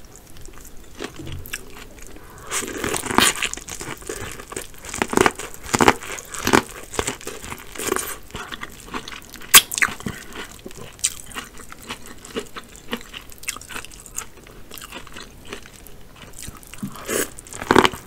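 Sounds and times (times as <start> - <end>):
chewing: 0.1 - 18.0
crunchy bites into corn: 2.5 - 13.8.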